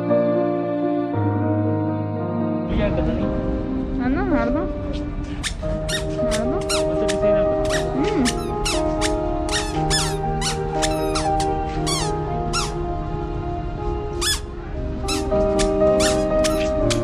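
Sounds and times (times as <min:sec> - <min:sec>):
music with sustained chords: 0:00.0 - 0:17.0
high squeaky chirps: 0:05.4 - 0:12.8, 0:14.2 - 0:17.0.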